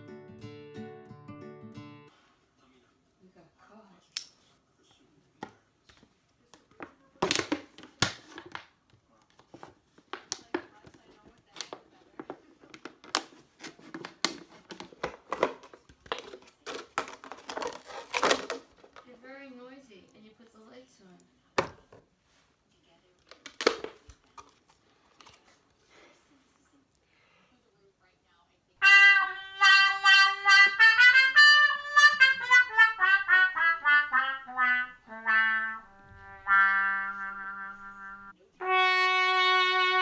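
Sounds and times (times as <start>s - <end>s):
music: 0.0s - 2.1s, 28.8s - 40.0s
knife cutting plastic bottles: 12.8s - 19.0s
plastic crackling and snapping: 14.0s - 19.0s.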